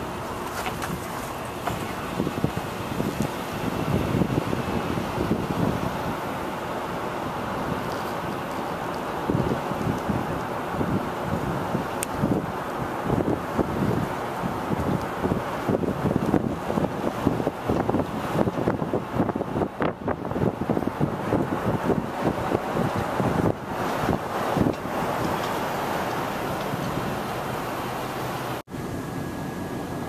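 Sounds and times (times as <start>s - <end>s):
wind buffeting microphone: 0.0s - 28.6s.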